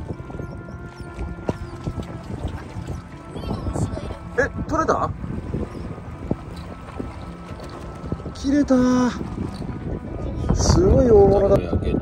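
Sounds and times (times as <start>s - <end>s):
sea washing along seawall: 0.0s - 12.0s
wind buffeting microphone: 0.0s - 12.0s.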